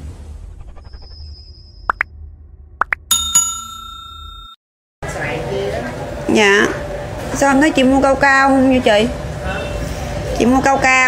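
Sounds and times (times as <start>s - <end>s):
bright bell chime: 3.1s - 4.6s.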